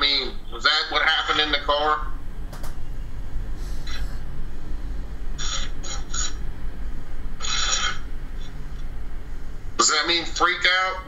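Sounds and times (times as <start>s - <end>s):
steady low hum: 0.0s - 11.0s
bursts of static hiss: 3.5s - 10.8s.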